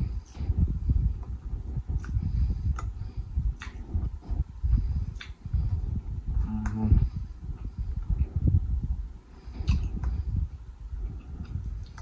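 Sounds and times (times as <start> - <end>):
chewing noodles: 1.2 - 5.7.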